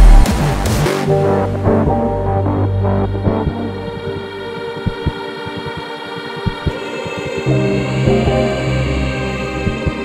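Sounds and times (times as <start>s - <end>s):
kick drum and bass: 0.0s - 0.8s
sustained synth chords: 0.0s - 10.0s
sharp clicks: 4.6s - 7.5s.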